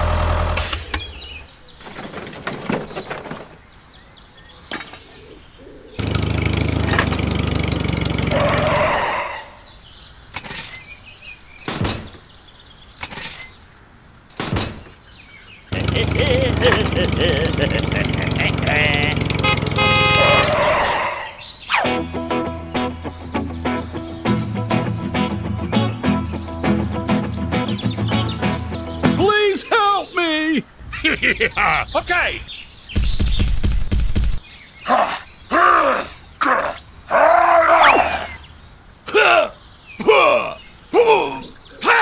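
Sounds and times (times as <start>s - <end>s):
small engine pulsing hum: 0.0s - 1.4s, 6.0s - 8.8s, 15.7s - 20.6s
short laugh: 15.8s - 18.4s, 30.9s - 31.8s
horn toot: 18.2s - 20.9s
cartoonish voice cries: 29.2s - 30.7s, 39.1s - 42.0s.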